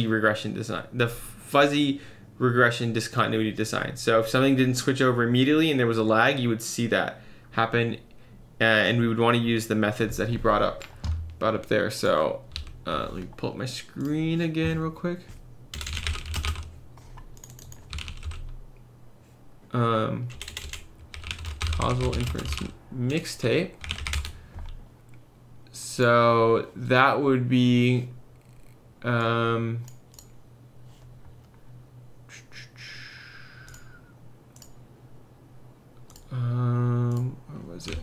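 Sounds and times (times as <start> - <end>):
steady low hum: 0.0 - 38.0
typing on computer keyboard: 15.7 - 16.7, 17.4 - 18.5, 20.3 - 22.7, 23.8 - 24.4.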